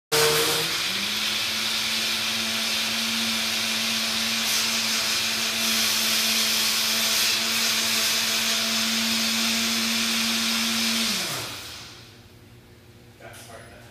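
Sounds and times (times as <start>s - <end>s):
blender running: 0.1s - 12.2s.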